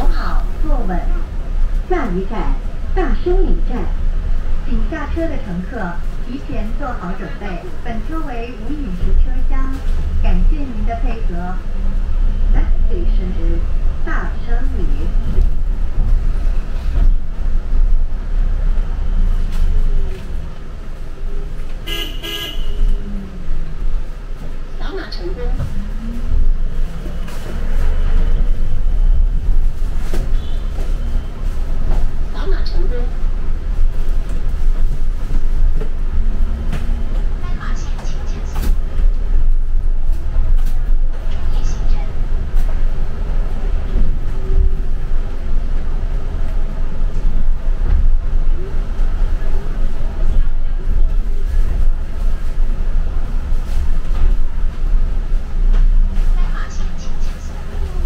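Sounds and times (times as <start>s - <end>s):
voices: 0.0s - 4.0s, 4.6s - 11.9s, 12.5s - 15.5s, 24.3s - 26.5s, 30.2s - 33.3s, 36.5s - 39.4s, 40.3s - 54.4s, 56.2s - 58.0s
bus cabin rumble: 0.0s - 58.0s.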